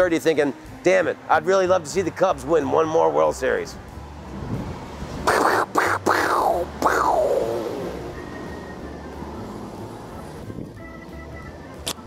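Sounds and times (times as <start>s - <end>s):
turntable scratch sound effect: 5.3s - 7.5s.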